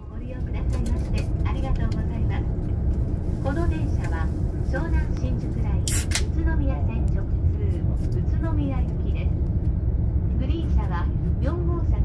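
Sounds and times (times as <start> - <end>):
voices: 0.0 - 2.5, 3.4 - 9.4, 10.4 - 12.0
train rumbling: 0.0 - 12.0.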